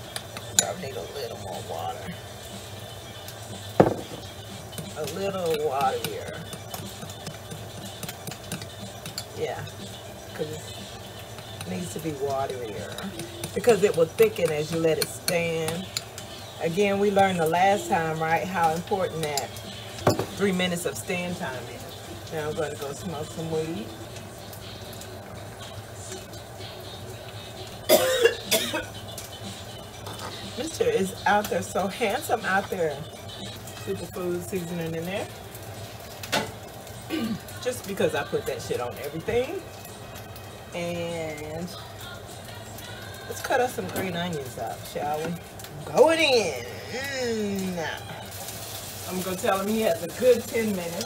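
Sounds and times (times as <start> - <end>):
glass knocking against glass bowl: 3.8 - 4.2, 20.0 - 20.4
woman coughing: 27.9 - 28.9, 37.1 - 37.5.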